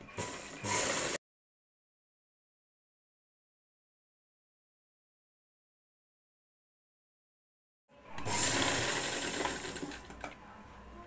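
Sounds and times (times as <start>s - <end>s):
sewing machine stitching: 0.0s - 1.2s, 8.2s - 10.2s.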